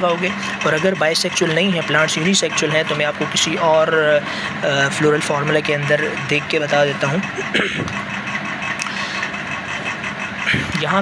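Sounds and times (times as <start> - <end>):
background hum: 0.0 - 11.0.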